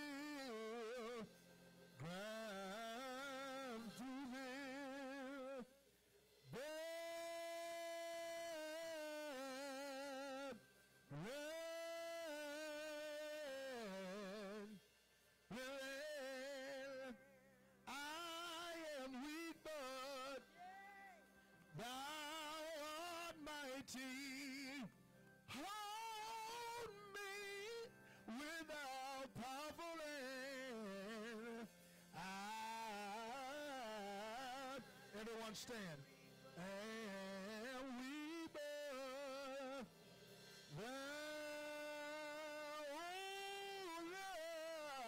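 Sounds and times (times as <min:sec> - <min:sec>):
man singing a held note: 0:00.0 - 0:01.3, 0:02.0 - 0:05.8, 0:06.5 - 0:14.8, 0:15.5 - 0:24.9, 0:25.5 - 0:40.0, 0:40.7 - 0:45.0.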